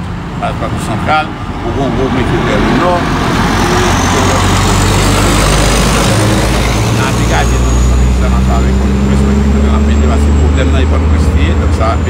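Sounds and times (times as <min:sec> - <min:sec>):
dump truck driving past: 0:00.0 - 0:12.0.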